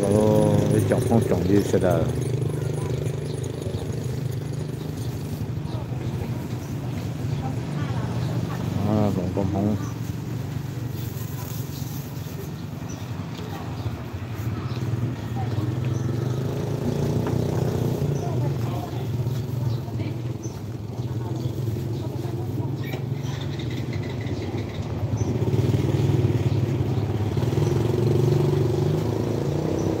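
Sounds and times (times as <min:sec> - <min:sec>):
people talking: 0:00.0 - 0:10.0, 0:11.2 - 0:16.4, 0:17.7 - 0:25.1.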